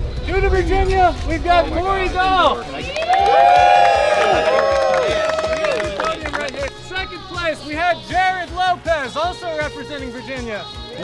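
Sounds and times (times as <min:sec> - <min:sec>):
crowd cheering: 0:00.7 - 0:07.6
voices whooping: 0:00.7 - 0:07.6
scattered claps: 0:00.8 - 0:07.6.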